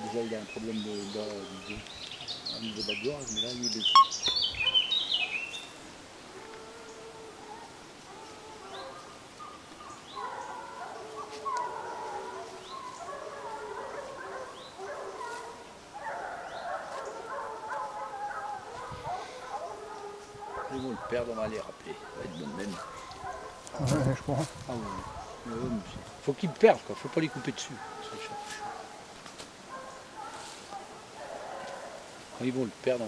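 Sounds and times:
bird chirping: 0.0s - 5.8s
distant hounds baying: 3.9s - 5.4s, 6.3s - 33.0s.

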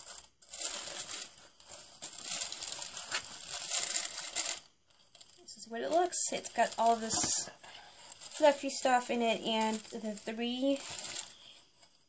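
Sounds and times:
tissue paper crinkling: 0.0s - 12.0s.

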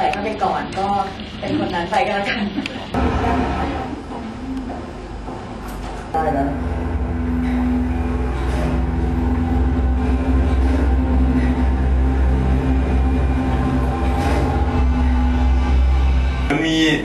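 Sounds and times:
low drone soundtrack music: 6.2s - 17.0s.

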